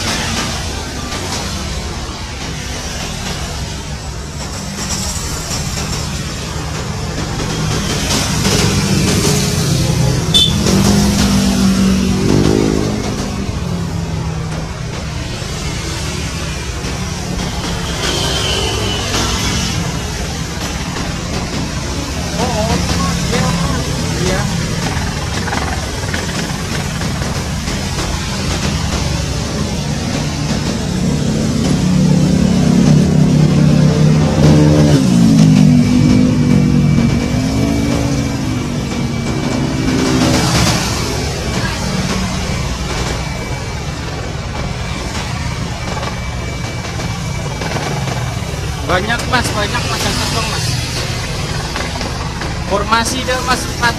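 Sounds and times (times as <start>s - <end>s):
helicopter hovering: 0.0s - 53.9s
person speaking: 22.4s - 26.6s.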